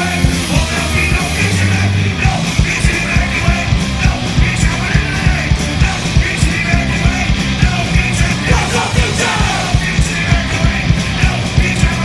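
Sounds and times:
fast drum beat: 0.0 - 12.0
guitars: 0.0 - 12.0
singer yelling vocals: 0.0 - 12.0.

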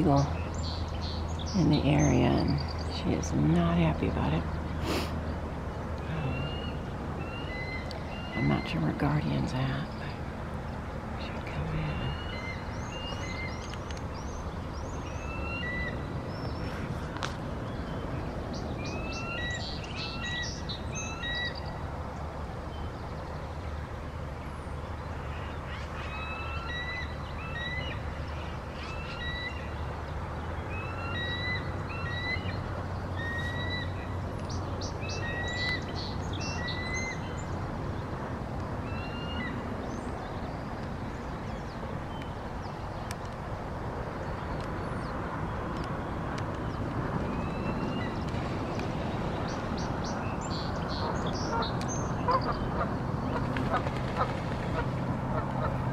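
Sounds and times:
eagle chirping calls: 6.3 - 8.8, 18.8 - 21.6.

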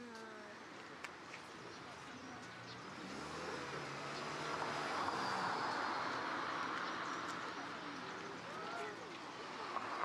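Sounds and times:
passing vehicle rumble: 2.8 - 10.0.

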